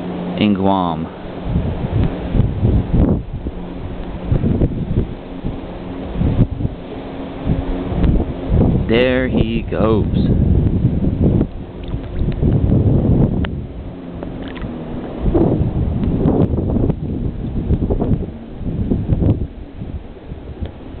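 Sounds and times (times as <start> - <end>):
gusty wind buffeting microphone: 0.0 - 21.0.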